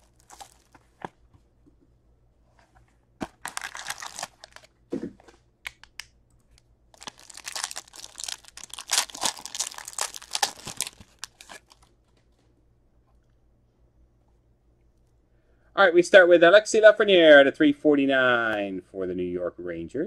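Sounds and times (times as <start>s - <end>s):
card wrapper crinkling and tearing: 0.0s - 0.8s, 3.2s - 4.7s, 7.0s - 11.9s.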